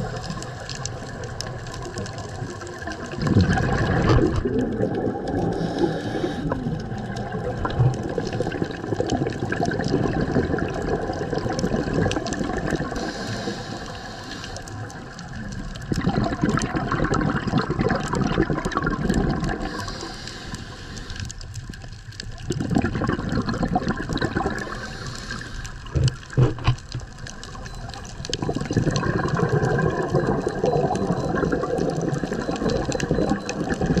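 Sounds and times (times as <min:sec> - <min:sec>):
underwater exhaled breath bubbling: 0:00.0 - 0:34.0.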